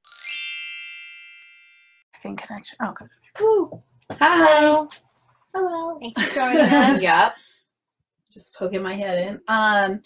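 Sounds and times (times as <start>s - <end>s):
bright bell-like chime: 0.0s - 2.1s.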